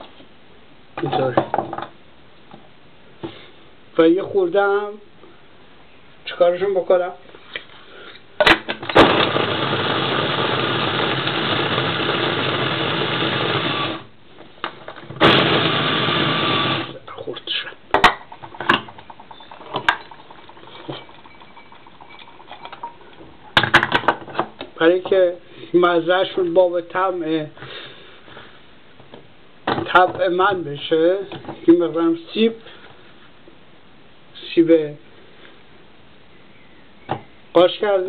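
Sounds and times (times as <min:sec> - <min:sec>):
electric food chopper running: 0:09.0 - 0:14.1, 0:15.2 - 0:17.0.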